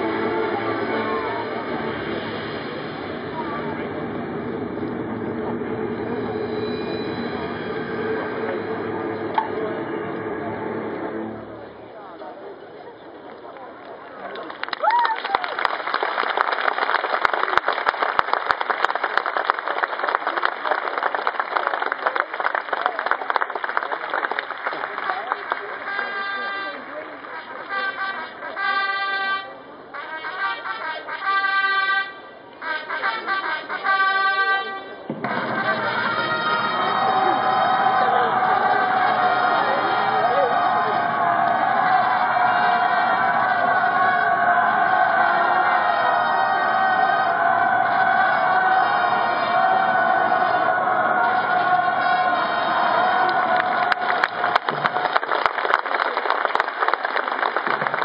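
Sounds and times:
military band playing: 0:00.0 - 0:11.7, 0:25.7 - 0:50.6.

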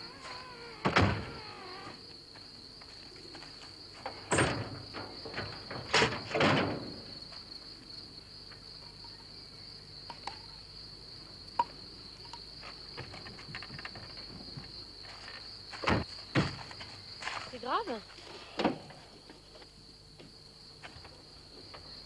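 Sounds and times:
crickets chirring: 0:00.0 - 0:22.0.

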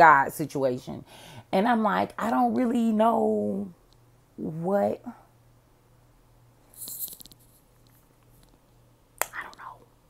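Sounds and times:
faint steady hum: 0:00.0 - 0:10.0
fingers scratching hair and scalp: 0:06.7 - 0:07.9.

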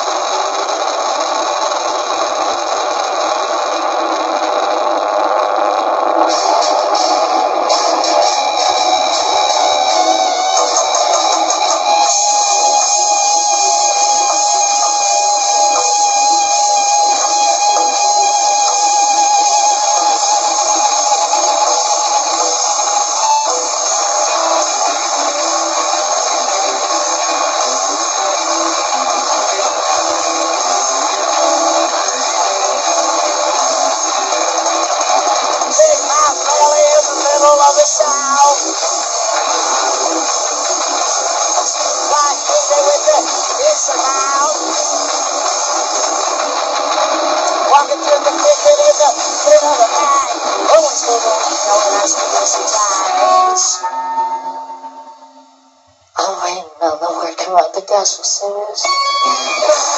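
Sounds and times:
drum kit: 0:00.0 - 0:53.8
distorted electric guitars: 0:00.0 - 0:59.9.

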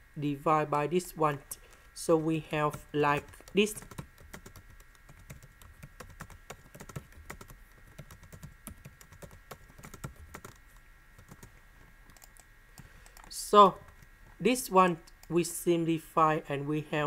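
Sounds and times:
typing on computer keyboard: 0:02.7 - 0:10.6, 0:11.2 - 0:11.5, 0:12.1 - 0:13.3.

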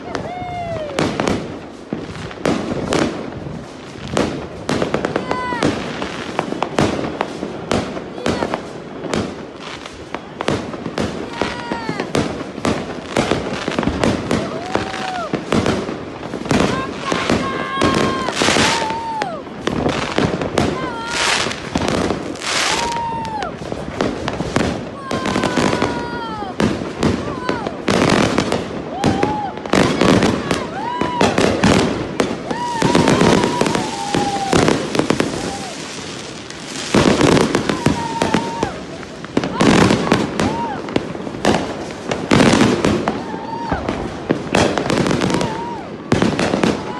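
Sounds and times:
fireworks bangs and crackles: 0:00.0 - 0:46.9
people calling out: 0:16.5 - 0:19.4, 0:20.6 - 0:21.6.

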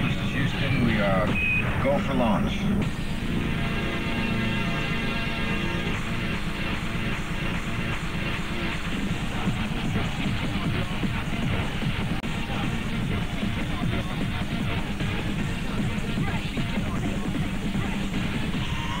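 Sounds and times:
electronic dance music: 0:00.0 - 0:19.0.

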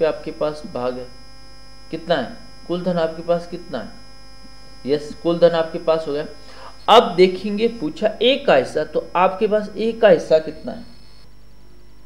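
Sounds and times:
person speaking: 0:00.0 - 0:01.1, 0:01.9 - 0:04.0, 0:04.8 - 0:10.9
electrical mains hum: 0:00.0 - 0:12.0.

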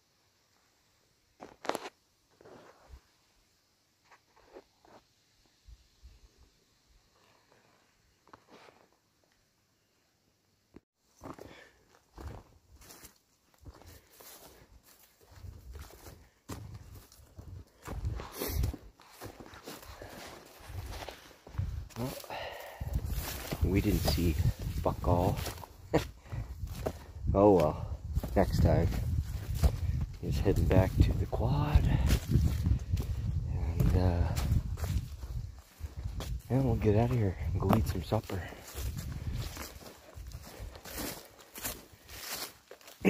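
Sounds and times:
footsteps through tall grass: 0:11.1 - 0:43.0.

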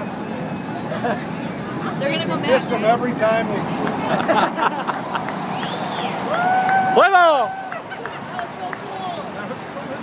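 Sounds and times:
jet flyover roar: 0:00.0 - 0:10.0
high rising and falling tone: 0:02.0 - 0:07.9.

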